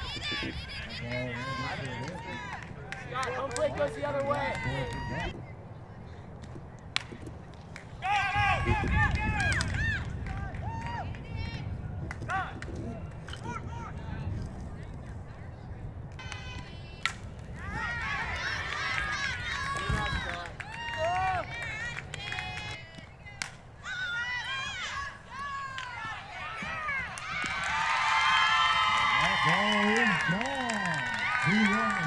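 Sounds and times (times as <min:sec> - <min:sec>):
people shouting and cheering: 0:00.0 - 0:05.4, 0:08.0 - 0:14.3, 0:16.2 - 0:32.0.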